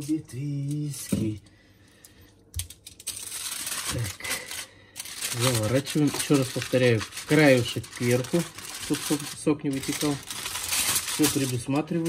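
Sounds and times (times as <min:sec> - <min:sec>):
aluminium foil crinkling: 0:00.0 - 0:12.0.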